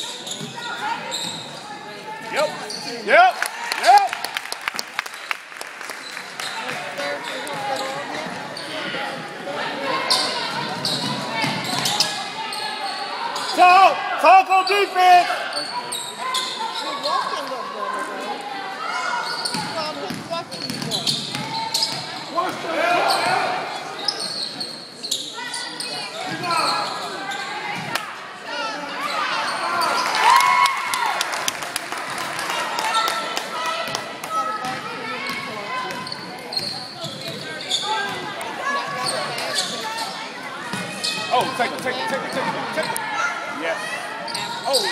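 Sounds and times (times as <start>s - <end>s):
basketball bouncing on wooden court: 19.5s - 22.0s.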